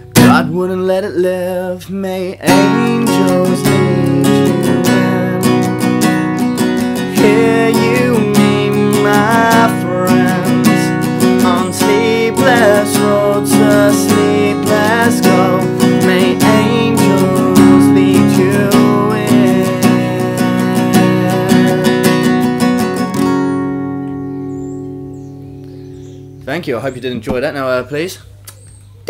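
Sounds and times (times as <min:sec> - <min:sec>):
acoustic guitar strumming: 0:00.0 - 0:27.2
man singing: 0:00.2 - 0:06.1, 0:06.8 - 0:23.0.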